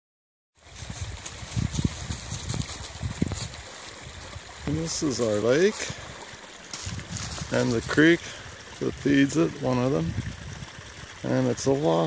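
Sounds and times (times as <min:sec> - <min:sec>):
creek running: 0:00.6 - 0:12.0.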